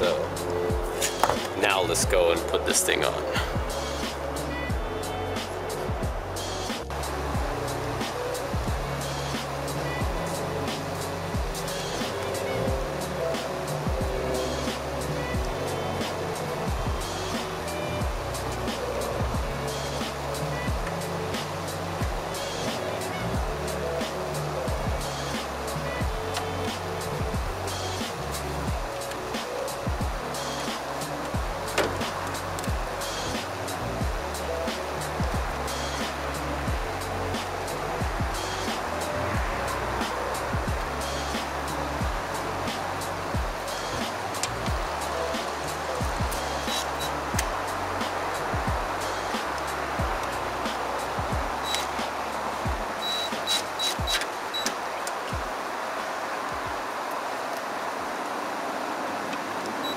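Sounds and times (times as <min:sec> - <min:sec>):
background music with beat and bass: 0:00.0 - 0:58.0.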